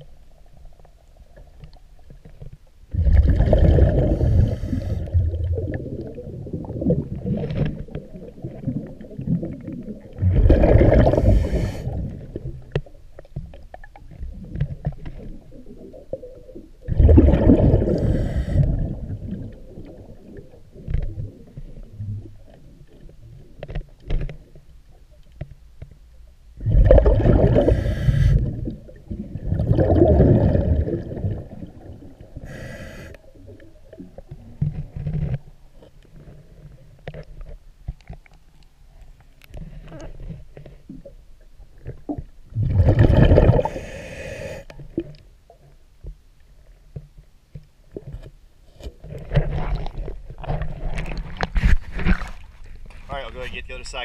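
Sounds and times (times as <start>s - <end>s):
underwater regulator bubbles: 2.9s - 12.9s, 13.8s - 23.1s, 26.6s - 35.4s, 41.8s - 45.2s.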